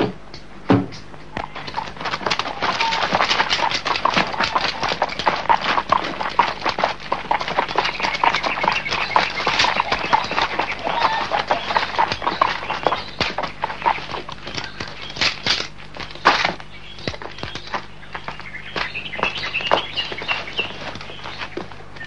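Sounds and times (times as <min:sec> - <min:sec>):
horse hoofbeats: 0:00.9 - 0:22.0
men running footsteps: 0:01.2 - 0:22.0.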